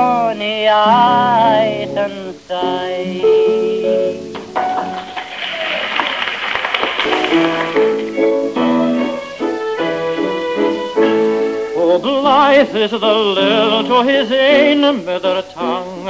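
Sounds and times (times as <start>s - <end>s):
tape noise: 4.0s - 12.7s
studio band playing: 4.0s - 16.0s.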